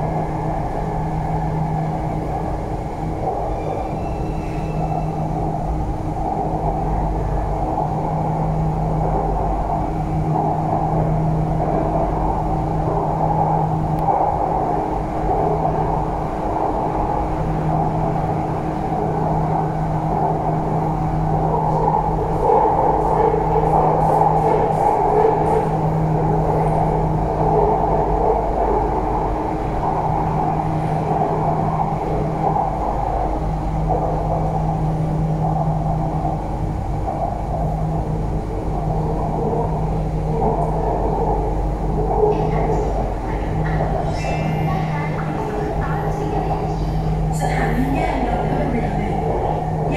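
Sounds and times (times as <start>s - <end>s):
low hum: 0.0s - 49.9s
train rumbling on rails: 0.0s - 49.9s.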